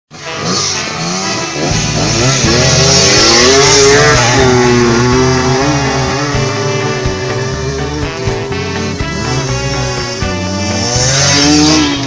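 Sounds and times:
background music: 0.1 - 12.0
dirt bike engine revving: 0.1 - 12.0.

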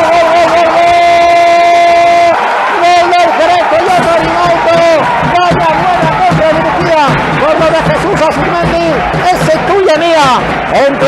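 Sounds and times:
excited commentary: 0.0 - 11.0.

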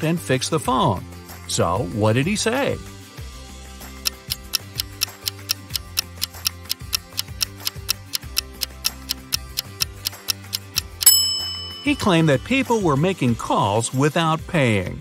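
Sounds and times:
soft background music: 0.0 - 15.0
clock ticking: 4.1 - 11.2
loud ringing tone: 11.0 - 12.5.

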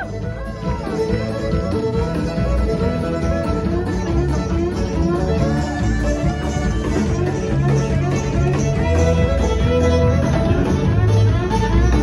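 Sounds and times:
bass line: 0.0 - 12.0
guitar: 0.0 - 12.0
violin: 0.0 - 12.0.

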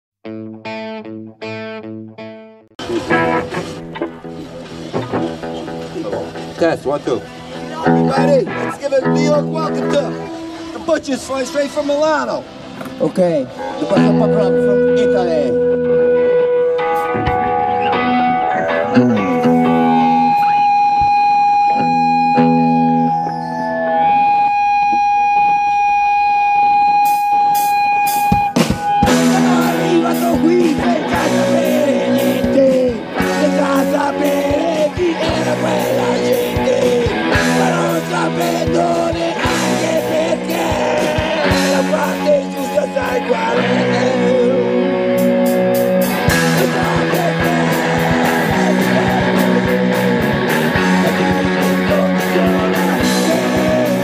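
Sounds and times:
electric guitar notes: 0.2 - 54.0
punk rock band playing: 0.3 - 24.6, 26.9 - 54.0
stage and amp noise: 2.8 - 54.0.

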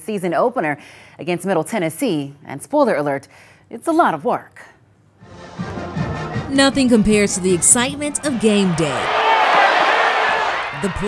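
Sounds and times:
crowd cheering: 5.9 - 11.0.

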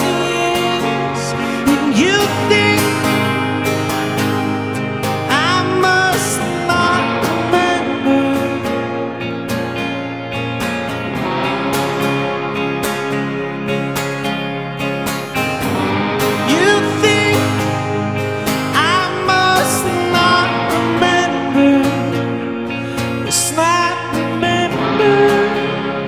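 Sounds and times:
man singing: 0.0 - 9.0, 16.3 - 26.0
electric guitars: 0.0 - 26.0
indie rock band playing: 0.0 - 26.0
strummed acoustic guitar: 0.0 - 26.0.

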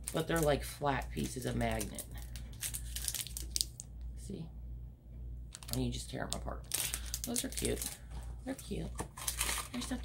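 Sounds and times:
plastic packaging crinkling: 0.0 - 3.9, 5.5 - 10.0.

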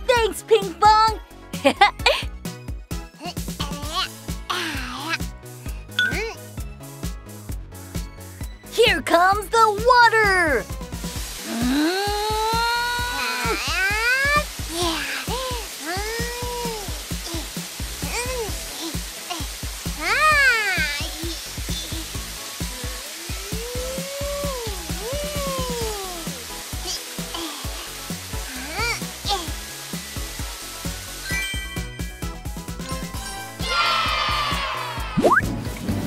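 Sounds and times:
children's music with steady beat: 0.0 - 36.0
hissing water spray effect: 10.1 - 36.0.

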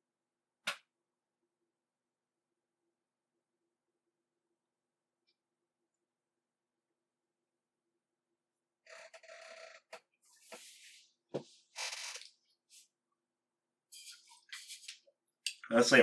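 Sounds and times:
faint creaks and rustles: 8.8 - 12.9.

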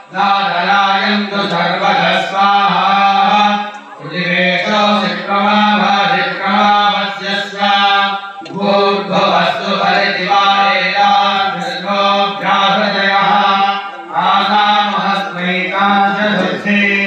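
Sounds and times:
mantras chanted: 0.0 - 17.0.

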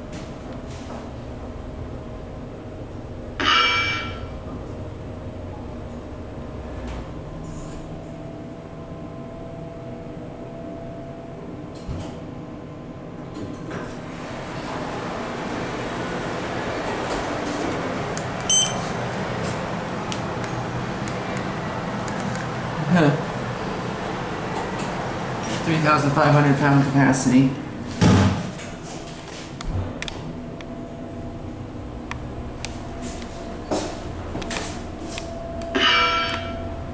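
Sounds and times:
elevator hum: 0.0 - 36.9
elevator chime: 3.4 - 4.5, 7.8 - 11.9, 18.0 - 20.0, 30.4 - 36.9
short high beep: 18.5 - 18.8.

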